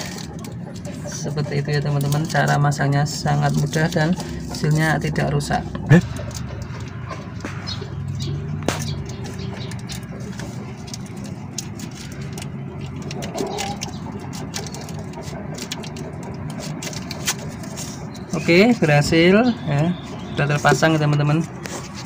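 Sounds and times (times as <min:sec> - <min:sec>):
hands clicking and tapping parts: 0:00.0 - 0:18.8
steady low hum: 0:00.0 - 0:22.0.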